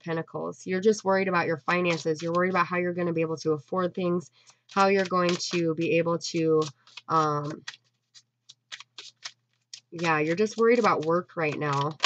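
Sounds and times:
cards being shuffled: 0:01.7 - 0:02.6, 0:04.4 - 0:12.0.

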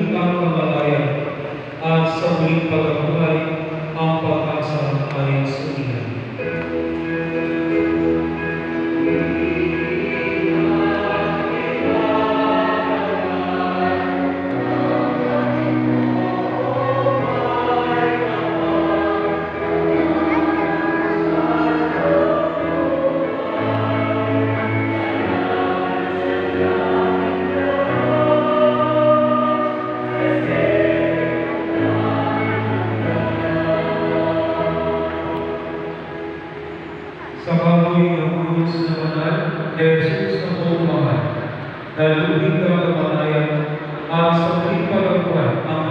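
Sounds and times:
church hymn music: 0:00.0 - 0:45.9
chanted prayer: 0:08.8 - 0:41.4, 0:42.0 - 0:45.9.

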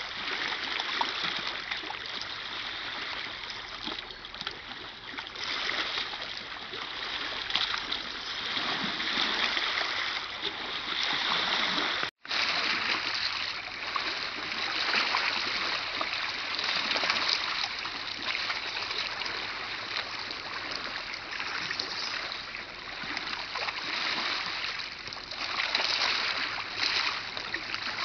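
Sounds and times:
waves lapping on rocks: 0:00.0 - 0:28.0.

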